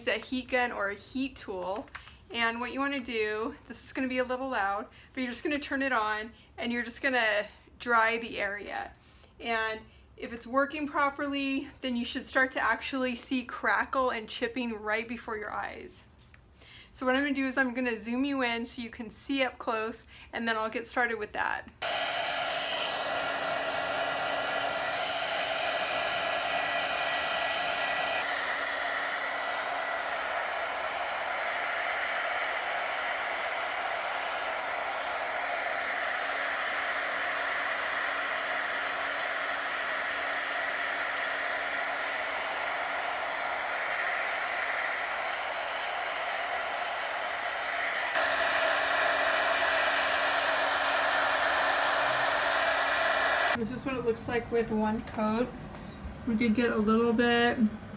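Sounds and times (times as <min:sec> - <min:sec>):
heat gun blowing air: 0:21.8 - 0:53.6.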